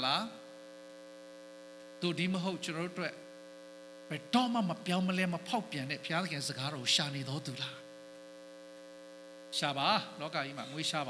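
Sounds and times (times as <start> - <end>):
electrical hum: 0.0 - 11.0.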